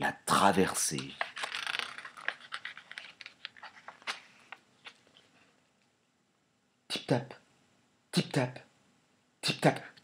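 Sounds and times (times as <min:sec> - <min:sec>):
paper page rustling: 0:00.8 - 0:05.6.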